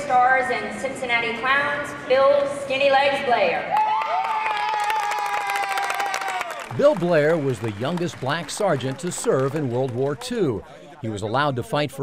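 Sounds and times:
person cheering high: 3.7s - 6.6s
audience applause: 3.8s - 11.0s.

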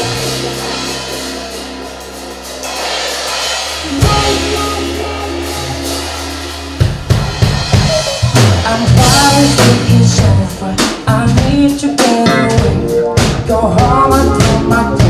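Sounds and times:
held chord: 0.0s - 7.8s
bass guitar: 0.0s - 15.0s
drum kit groove: 0.0s - 15.0s.

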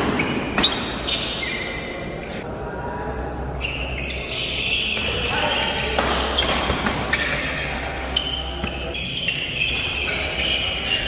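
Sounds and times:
rackets striking shuttlecock: 5.8s - 8.8s.

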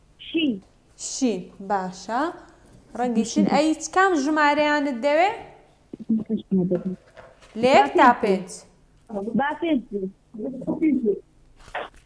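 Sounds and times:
woman murmuring: 6.0s - 7.0s, 10.0s - 11.2s.

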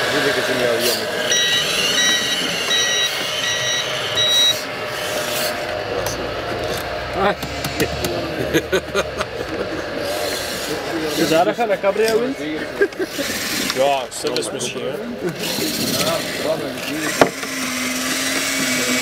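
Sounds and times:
high electronic beeps: 1.2s - 4.7s.

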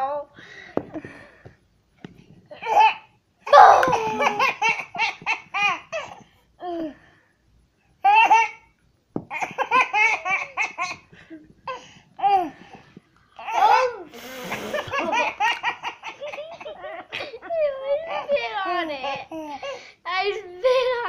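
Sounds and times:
toddler laughing: 2.6s - 6.2s, 9.3s - 12.5s, 14.6s - 19.7s.

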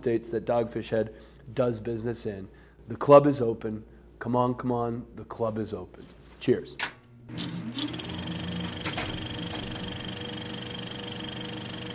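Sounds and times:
film projector running: 7.3s - 11.9s.

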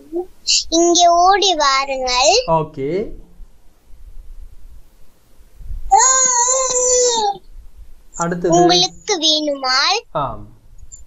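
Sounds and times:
child holding high vowel: 5.9s - 7.4s.

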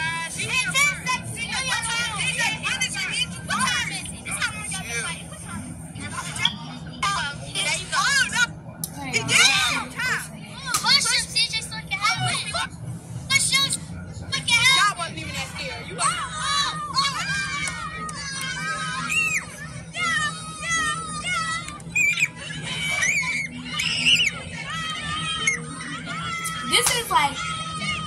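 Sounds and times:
children shouting: 16.0s - 28.0s.

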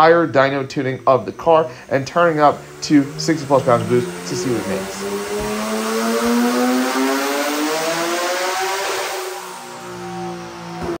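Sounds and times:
car engine revving on a dyno: 0.0s - 11.0s.

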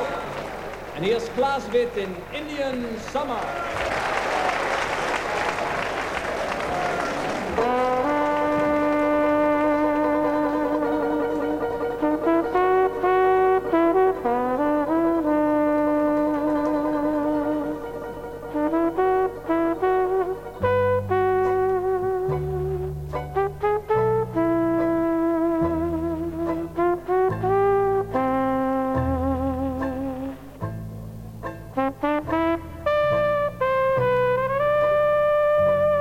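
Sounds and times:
applause: 0.0s - 9.4s
brass section sustained chords: 7.3s - 30.6s, 31.7s - 36.0s
bass notes: 7.6s - 36.0s.

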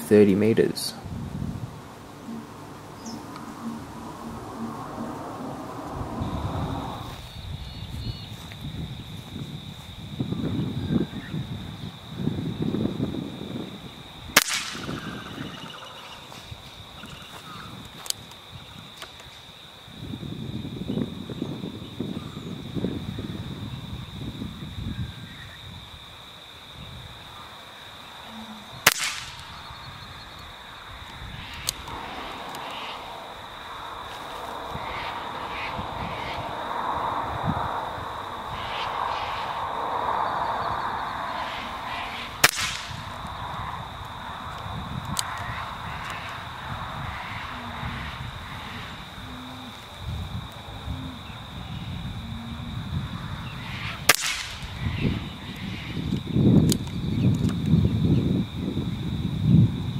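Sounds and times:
air rifle shot crack: 14.4s - 15.5s, 28.8s - 29.6s, 42.4s - 43.2s, 54.1s - 54.8s.

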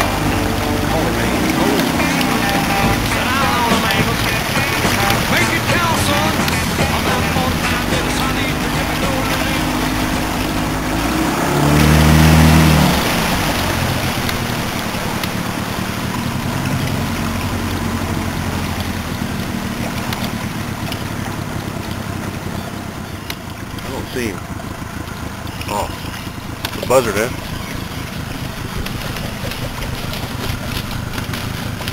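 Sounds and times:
small boat motor running: 0.0s - 31.9s
water rushing along hull: 0.0s - 31.9s.

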